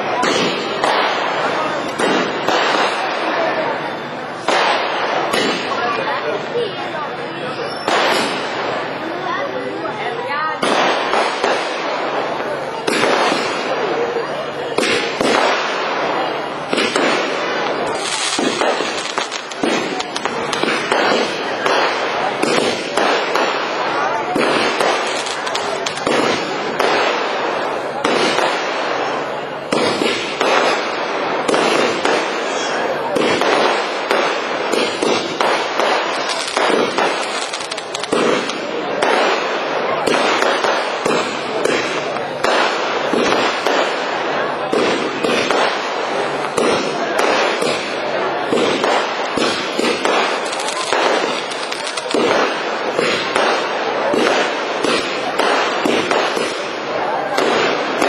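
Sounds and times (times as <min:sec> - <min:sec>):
fireworks crackling and banging: 0:00.0 - 0:58.0.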